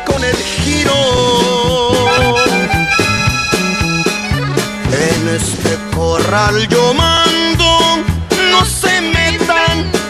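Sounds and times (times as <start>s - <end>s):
person singing: 0.0s - 3.4s, 4.8s - 10.0s
accordion melody: 0.0s - 10.0s
bass line: 0.0s - 10.0s.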